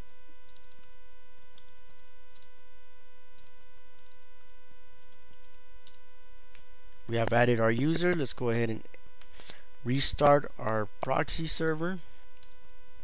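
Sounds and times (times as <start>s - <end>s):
faint tonal whine: 0.0s - 13.0s
steady electrical hum: 0.0s - 13.0s
keyboard clicks: 0.1s - 2.5s, 3.4s - 6.0s, 12.4s - 12.6s.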